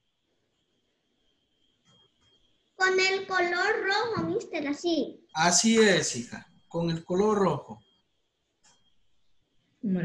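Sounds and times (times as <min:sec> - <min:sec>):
thin high-pitched tone: 0:05.4 - 0:07.8.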